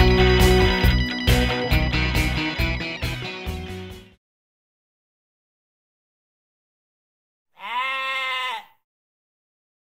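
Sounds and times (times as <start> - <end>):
held animal call: 7.6 - 8.8.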